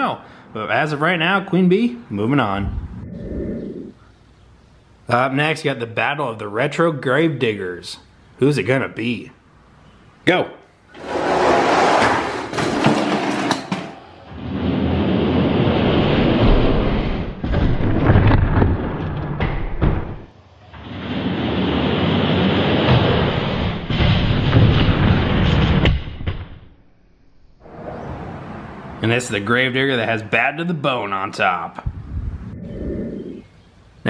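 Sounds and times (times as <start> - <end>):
slowed low rumble with knocks: 31.8 - 33.0.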